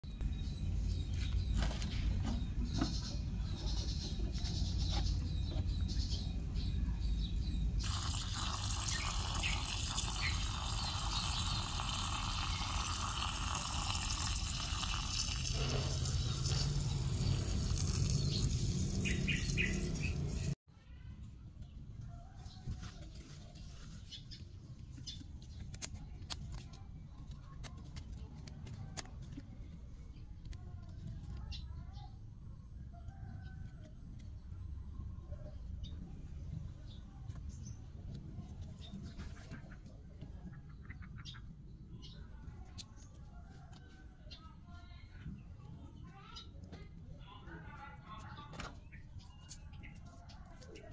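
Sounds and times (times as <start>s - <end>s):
hose spraying water: 7.8s - 20.6s.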